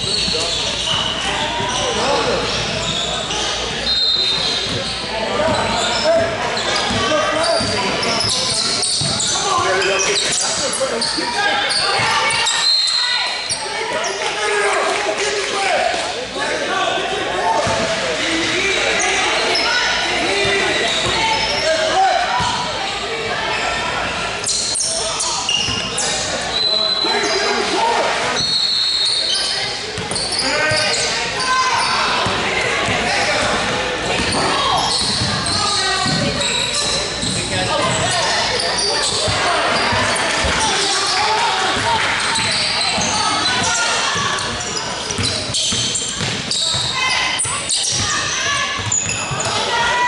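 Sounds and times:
indistinct shouting and chatter: 0.0 - 50.0
basketball bouncing on court: 5.5 - 7.8, 8.5 - 9.7, 30.0 - 31.0, 32.2 - 38.2, 41.7 - 49.6.

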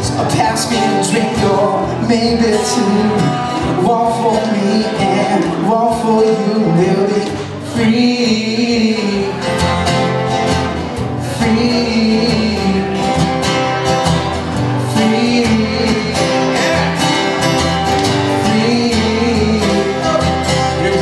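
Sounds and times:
acoustic guitars strumming: 0.0 - 21.0.

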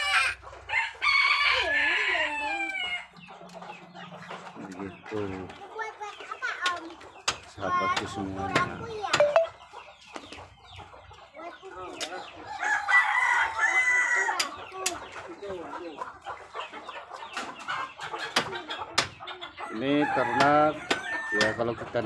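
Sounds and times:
rooster crowing: 0.0 - 3.0, 12.5 - 14.4
chickens and ducks clucking: 0.0 - 22.0.

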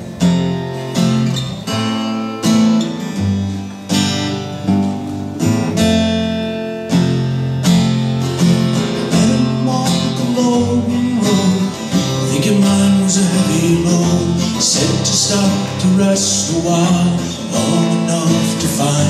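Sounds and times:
acoustic guitar strumming: 0.0 - 19.0.

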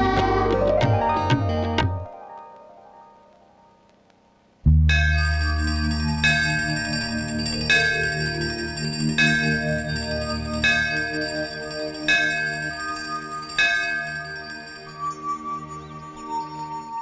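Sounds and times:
low drone with held notes: 4.7 - 17.0
temple bell ringing: 4.7 - 17.0.

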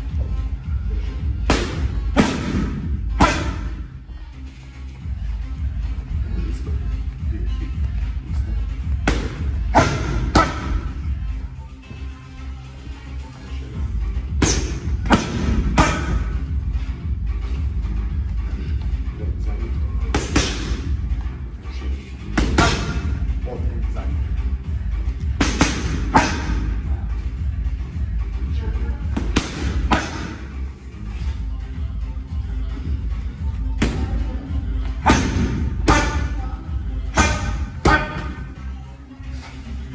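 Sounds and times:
music with heavy bass: 0.0 - 39.9
strikes smacking on pads: 1.5 - 3.6, 35.0 - 36.3.

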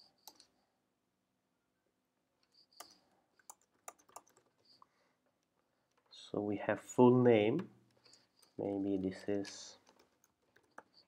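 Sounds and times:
computer keyboard keystrokes: 2.8 - 4.5.

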